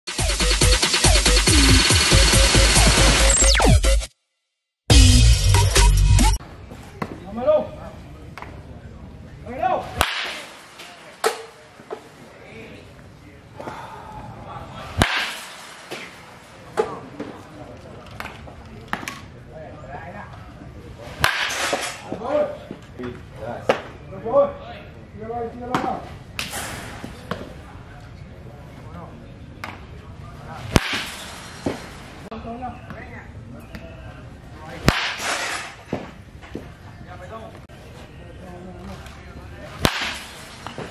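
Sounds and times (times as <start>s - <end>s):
bat cracking ball: 10.0s - 11.5s, 15.0s - 16.2s, 21.2s - 22.1s, 30.7s - 31.9s, 34.8s - 36.2s, 39.8s - 40.9s.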